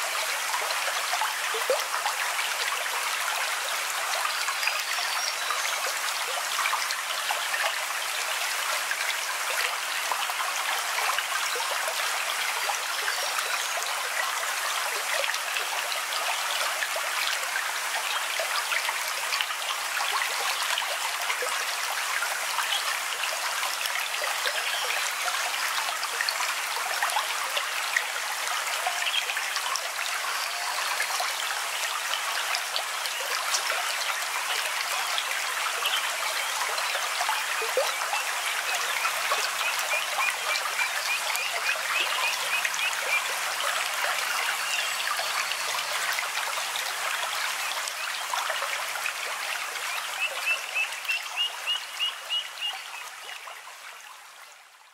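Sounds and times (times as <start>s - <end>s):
water trickling in a stream: 0.0s - 54.9s.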